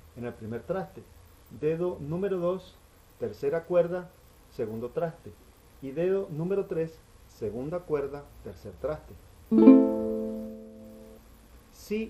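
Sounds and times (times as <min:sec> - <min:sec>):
strummed string chord: 0:09.5 - 0:11.2.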